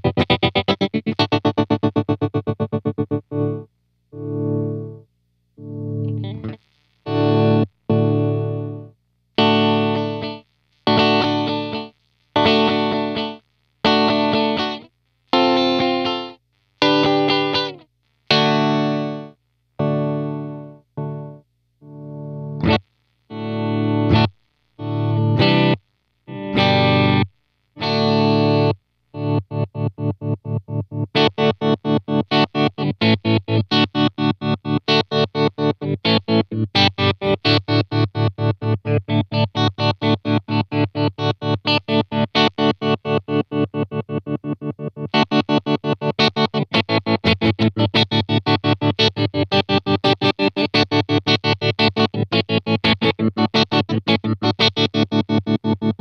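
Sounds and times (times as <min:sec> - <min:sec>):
electric guitar chords with tremolo: 0:00.0 - 0:05.0, 0:05.6 - 0:14.8, 0:15.4 - 0:56.0.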